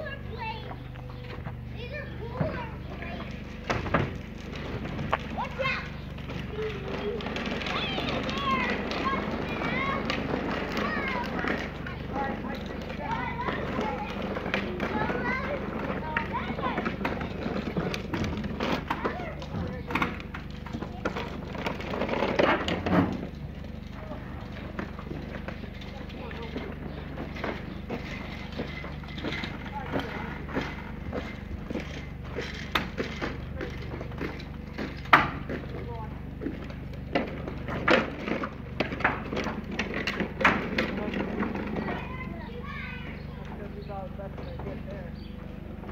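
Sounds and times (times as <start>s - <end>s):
people talking: 0.0s - 3.5s, 5.2s - 21.5s, 23.9s - 27.4s, 28.6s - 30.9s, 33.2s - 34.2s, 35.5s - 36.3s, 40.8s - 45.3s.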